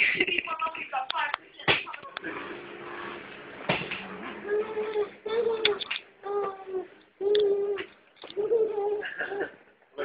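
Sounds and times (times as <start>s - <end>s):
toddler crying wordlessly: 4.4s - 9.1s.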